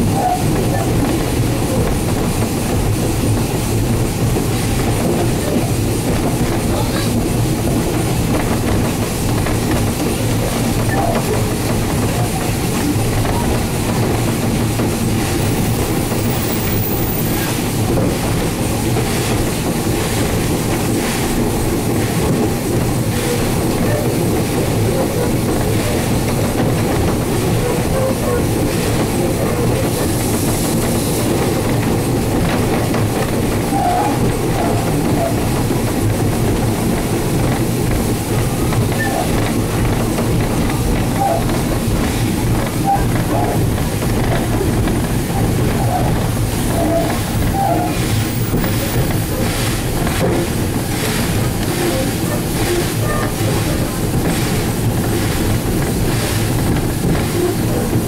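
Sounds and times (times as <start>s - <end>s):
steam locomotive rolling: 0.0s - 58.0s
wheels clicking over rail joints: 0.0s - 58.0s.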